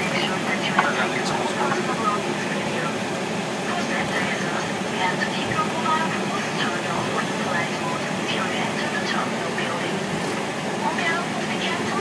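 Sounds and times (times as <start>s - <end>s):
cockpit rumble and hiss: 0.0s - 12.0s
faint indistinct voices: 0.0s - 12.0s.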